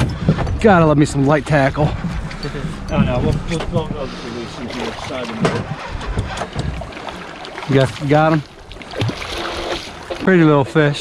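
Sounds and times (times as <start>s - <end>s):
low steady rumble: 0.0s - 8.7s
indistinct talking: 1.1s - 5.8s.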